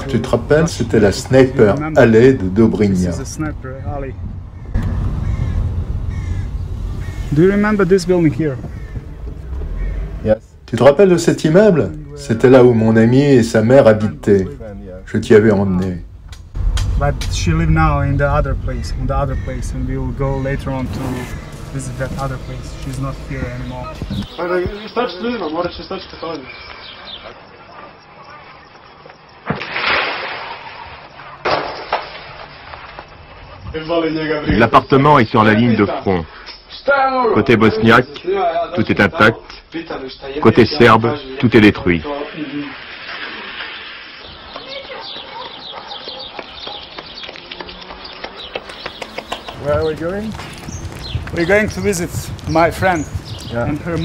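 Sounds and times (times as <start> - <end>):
man speaking: 0.0 - 4.2, 7.3 - 8.7, 16.9 - 26.5
car engine and tyres rumbling: 0.0 - 24.8, 47.0 - 54.0
faint crack: 15.8 - 17.6, 29.0 - 33.6.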